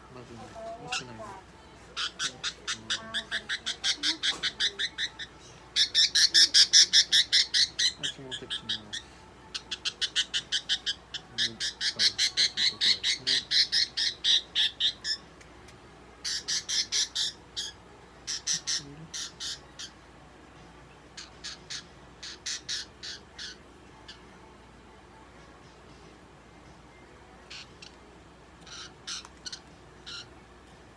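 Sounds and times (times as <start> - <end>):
budgerigar squawking: 2.0 - 15.2, 16.2 - 20.0, 21.2 - 24.2, 27.5 - 28.0, 28.6 - 30.3.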